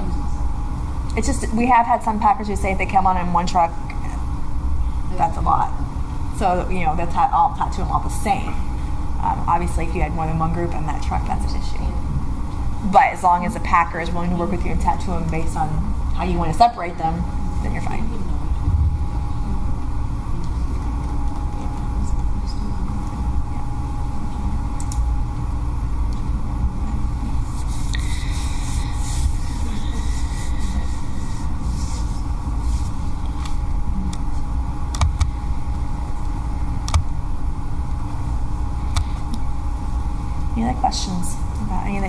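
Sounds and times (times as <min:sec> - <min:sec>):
faint steady hum: 0:00.0 - 0:42.0
low room rumble: 0:00.0 - 0:42.0
scattered clicks: 0:24.8 - 0:25.0.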